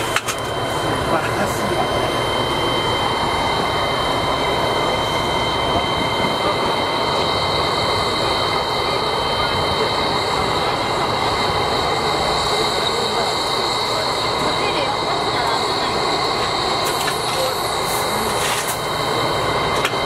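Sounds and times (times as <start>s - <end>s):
high steady whines: 0.0s - 20.0s
steam locomotive hissing: 0.0s - 20.0s.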